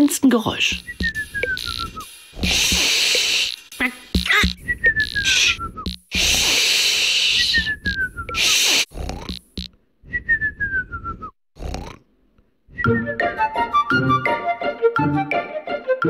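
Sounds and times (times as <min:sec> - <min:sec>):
flute music: 0:00.7 - 0:02.1, 0:12.7 - 0:16.0
falling whistles: 0:00.8 - 0:08.9, 0:10.0 - 0:11.4
shushing hisses: 0:00.8 - 0:09.2.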